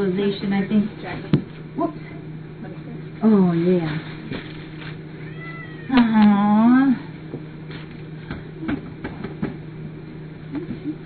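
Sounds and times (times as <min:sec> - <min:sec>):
cat meowing: 0:05.2 - 0:06.1.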